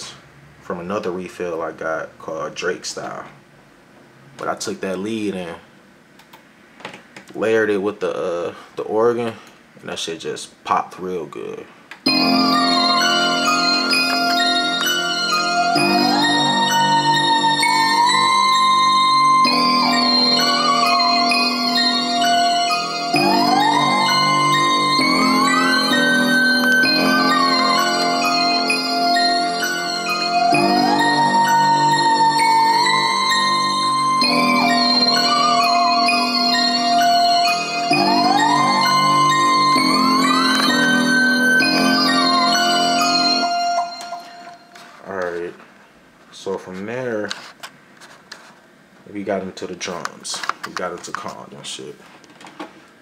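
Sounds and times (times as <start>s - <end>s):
whistle-like synth lead: 12.1s - 44.8s
bell piano and organ notes: 12.1s - 45.0s.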